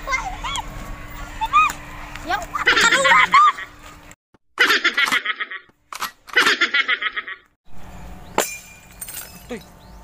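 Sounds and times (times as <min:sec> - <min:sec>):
faint clinks: 0:08.4 - 0:09.8.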